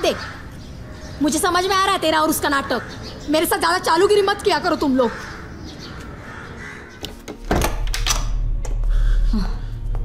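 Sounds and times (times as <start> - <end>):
crows cawing: 0.0 - 1.2, 2.3 - 3.4, 4.5 - 7.3, 8.8 - 9.7.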